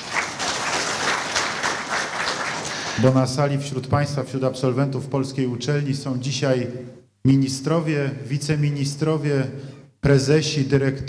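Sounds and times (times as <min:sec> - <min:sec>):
audience applauding: 0:00.0 - 0:03.1.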